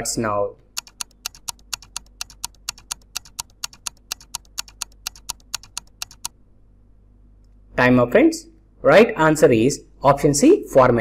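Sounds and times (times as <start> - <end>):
timer ticking: 0.7 - 6.4.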